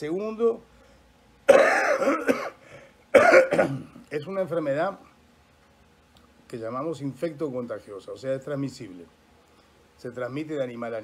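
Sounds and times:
man coughing: 1.5s - 4.0s.

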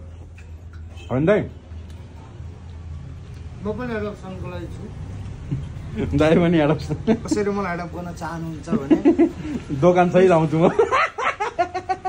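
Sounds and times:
people chuckling: 8.7s - 9.8s, 10.5s - 12.0s.

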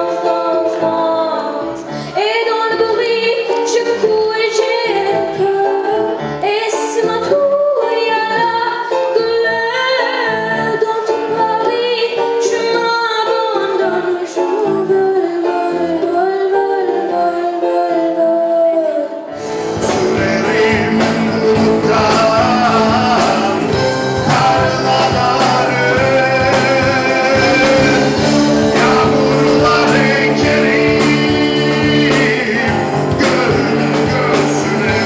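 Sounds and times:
woman singing: 0.0s - 19.3s
live band playing: 0.0s - 35.0s.

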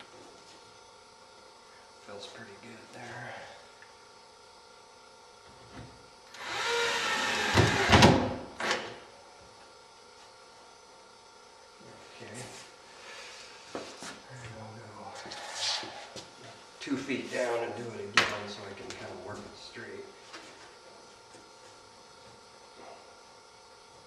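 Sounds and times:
cordless drill driving a screw: 6.3s - 8.1s.

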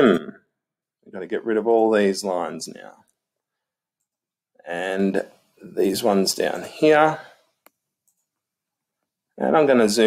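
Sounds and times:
man's voice: 4.7s - 7.4s, 9.4s - 10.0s
computer mouse click: 7.6s - 8.4s.

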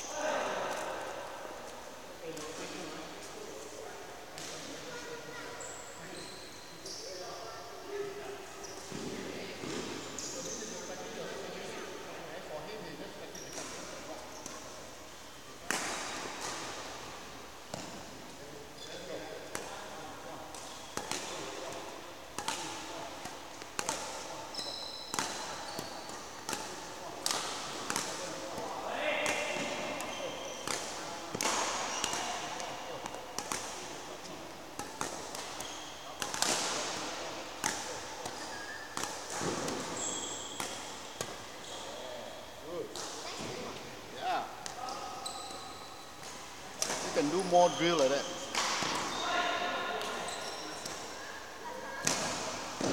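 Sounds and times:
shoe squeaks on court floor: 5.6s - 7.3s, 8.6s - 9.0s, 18.8s - 19.1s, 24.5s - 26.1s, 29.6s - 30.8s, 31.7s - 32.5s, 35.6s - 36.2s, 38.4s - 42.3s, 44.8s - 46.1s, 47.0s - 51.1s
rackets hitting shuttlecocks: 20.5s - 24.3s, 25.1s - 41.6s, 52.0s - 52.9s.

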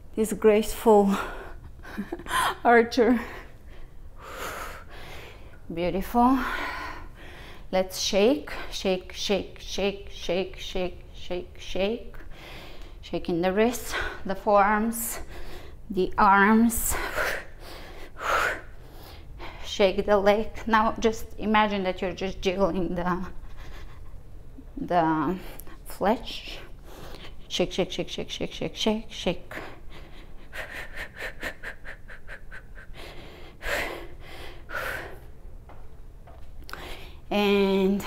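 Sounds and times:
woman breathing: 1.0s - 7.8s, 12.2s - 13.0s, 15.0s - 15.9s, 16.7s - 19.8s, 25.3s - 27.5s, 29.5s - 35.4s, 36.6s - 37.3s.

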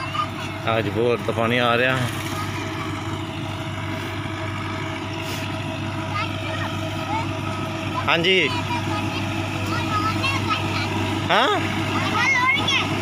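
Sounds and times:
engine drone: 0.0s - 13.0s
faint constant tones: 0.0s - 13.0s.

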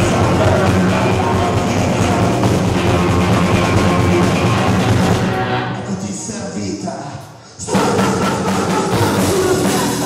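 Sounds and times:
live band playing: 0.0s - 6.6s, 7.6s - 10.0s.

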